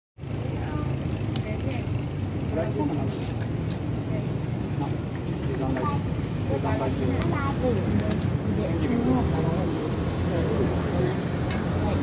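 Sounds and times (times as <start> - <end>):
low engine rumble: 0.2 - 12.0.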